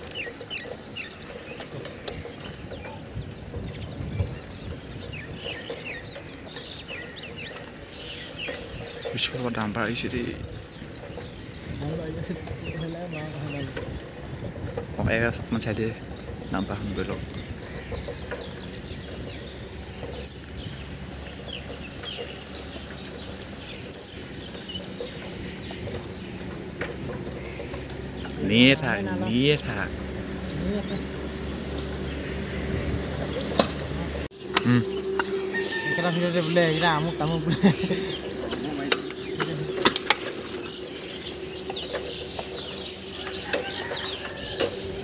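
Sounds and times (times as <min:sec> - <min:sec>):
bicycle chain ticking and rattling: 0:00.0 - 0:33.4, 0:34.7 - 0:45.0
wind buffeting microphone: 0:00.9 - 0:35.7.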